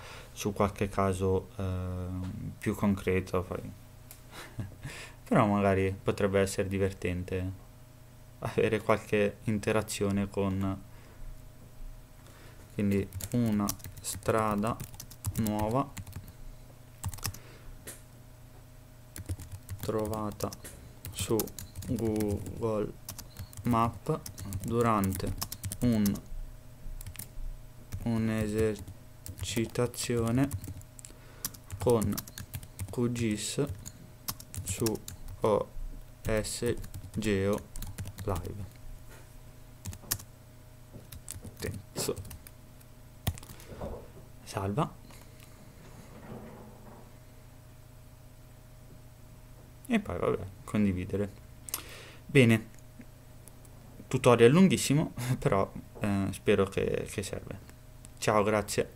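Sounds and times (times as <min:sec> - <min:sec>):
computer keyboard typing: 0:12.8 - 0:16.4, 0:17.0 - 0:17.4, 0:19.2 - 0:26.3, 0:27.0 - 0:27.3, 0:27.9 - 0:33.0, 0:33.6 - 0:35.4, 0:36.2 - 0:38.7, 0:39.8 - 0:40.3, 0:41.1 - 0:42.5, 0:43.2 - 0:43.6.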